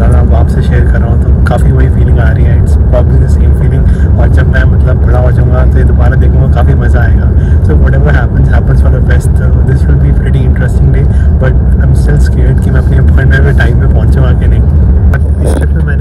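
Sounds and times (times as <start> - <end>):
bus engine rumble: 0.0 - 16.0
man talking: 0.0 - 16.0.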